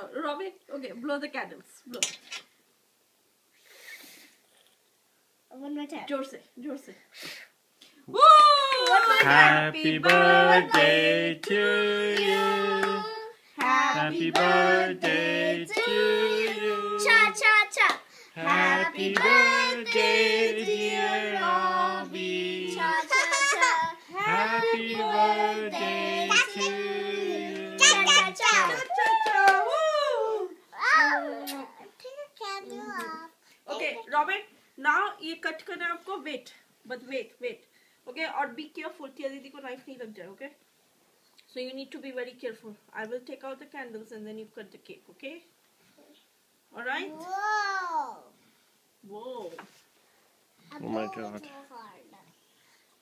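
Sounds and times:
child blowing at candles: 3.6 - 4.4, 7.1 - 7.6.

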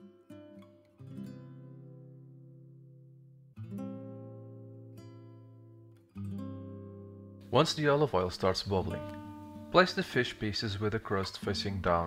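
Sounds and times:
acoustic guitar chords: 0.0 - 12.0.

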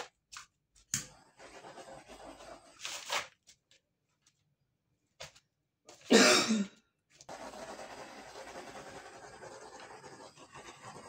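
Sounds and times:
paint tool rubbing on canvas: 1.1 - 2.8, 7.3 - 11.0
person coughing: 6.0 - 6.9.

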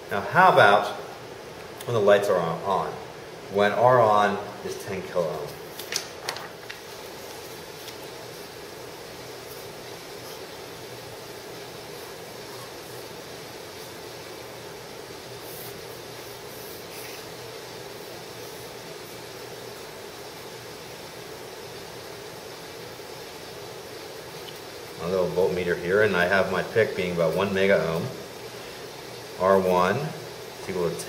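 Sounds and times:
steady background hiss: 0.0 - 31.0
marker drawing on paper: 15.4 - 17.4.

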